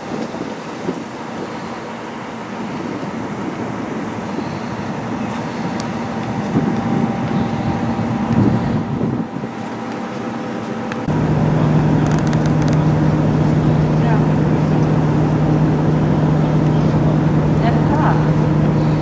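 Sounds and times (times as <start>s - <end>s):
ship engine rumble: 0.0s - 19.0s
ship's whistle long low blast: 1.6s - 9.6s.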